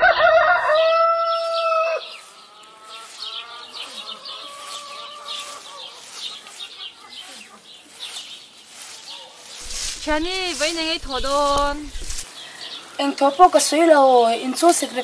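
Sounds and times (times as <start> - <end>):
rooster crowing: 0.0 - 2.2
small birds chirping: 0.8 - 15.0.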